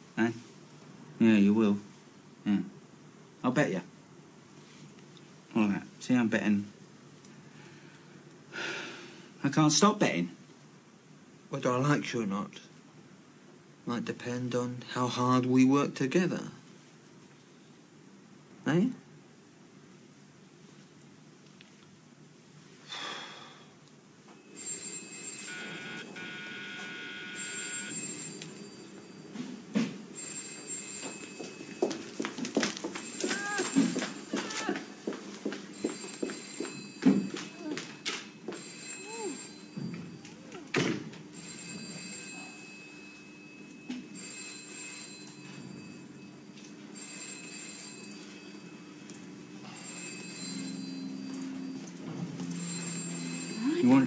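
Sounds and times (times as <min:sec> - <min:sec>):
telephone bell ringing: 0:24.3 - 0:40.6, 0:41.3 - 0:54.0.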